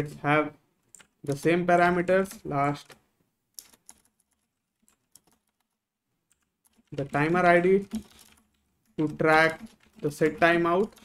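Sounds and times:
faint keyboard keystrokes: 0:02.2 - 0:11.0.

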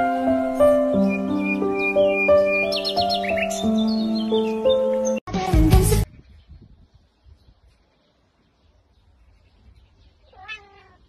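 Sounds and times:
cat meowing: 0:10.2 - 0:11.0.

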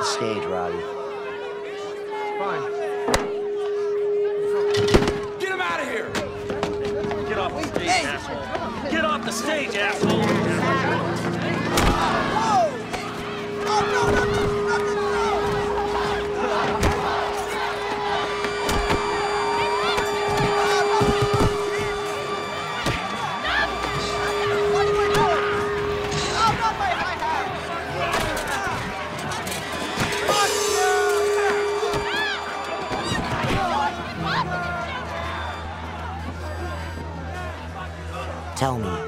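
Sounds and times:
droning tone: 0:00.0 - 0:38.6
crowd shouting and yelling: 0:00.0 - 0:39.0.

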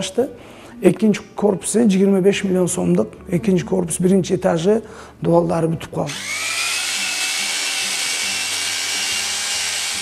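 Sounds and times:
electric drill mixing: 0:06.1 - 0:10.0.

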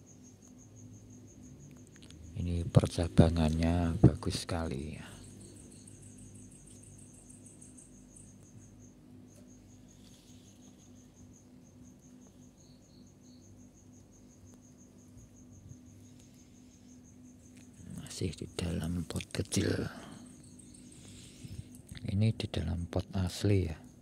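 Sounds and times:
crickets chirping: 0:00.0 - 0:24.0
faint low hum: 0:00.0 - 0:24.0.

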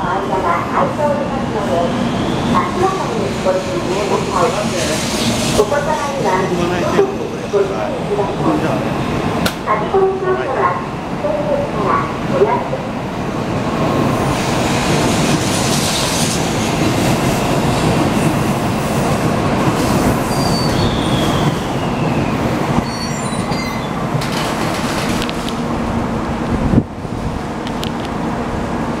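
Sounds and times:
train rushing past: 0:00.0 - 0:29.0
high squealing tones: 0:22.8 - 0:24.0.

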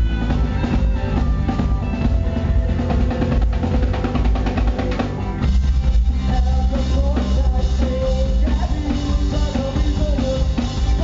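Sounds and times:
drum kit: 0:00.0 - 0:11.0
live rock band playing: 0:00.0 - 0:11.0.

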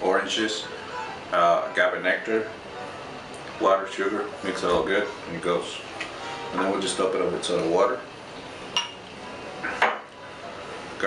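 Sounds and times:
glassware clinking: 0:08.7 - 0:10.1.

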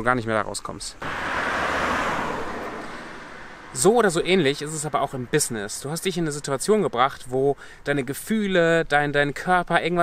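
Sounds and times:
car passing on road: 0:01.0 - 0:05.8.

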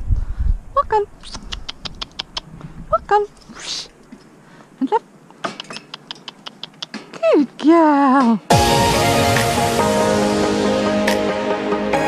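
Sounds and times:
tongue clicks: 0:01.2 - 0:02.6, 0:05.3 - 0:07.0.

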